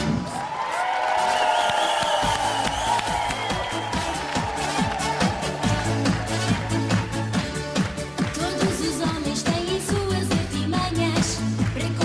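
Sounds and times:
upbeat pop dance beat: 1.7 - 12.0
bass and kick drum: 2.2 - 12.0.

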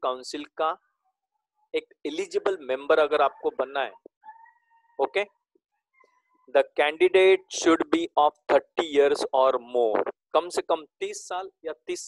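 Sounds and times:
person speaking: 1.8 - 5.3, 6.5 - 12.0
faint high-pitched animal call: 3.1 - 5.1.

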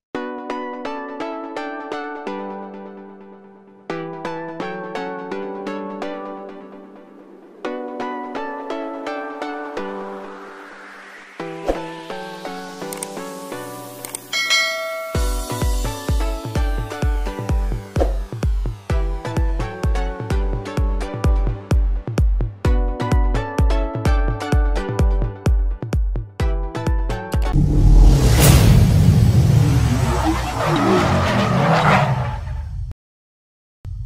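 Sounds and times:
music: 0.1 - 29.6
bright bell chime: 14.3 - 15.8
electronic dance music: 14.4 - 19.2
car engine: 27.6 - 32.6
tyres skidding and squealing: 29.0 - 32.9.

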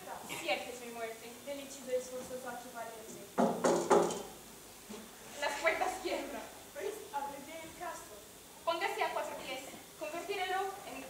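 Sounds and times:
knocks on wooden door: 3.4 - 4.3.

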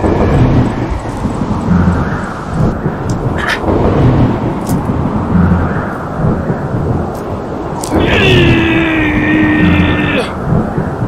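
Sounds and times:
rolling thunder rumble: 0.0 - 11.0
sharp thunder crackles: 0.0 - 11.0.

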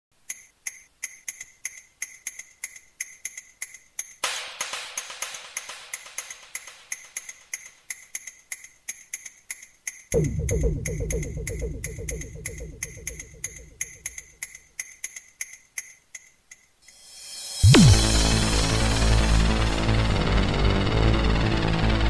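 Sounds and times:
electronic percussion ticks: 0.2 - 18.1
filtered noise swell: 10.2 - 14.3.

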